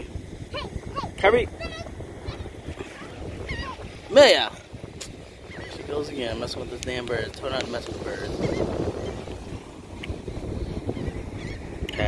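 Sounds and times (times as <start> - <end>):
wind buffeting microphone: 0.0 - 12.0
faint gull calls: 0.5 - 3.8, 5.5 - 5.8, 10.9 - 12.0.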